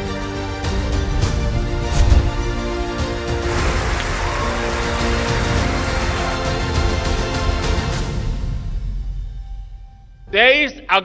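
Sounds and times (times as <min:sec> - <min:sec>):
soundtrack music: 0:00.0 - 0:09.9
crowd clapping and cheering: 0:03.2 - 0:08.2.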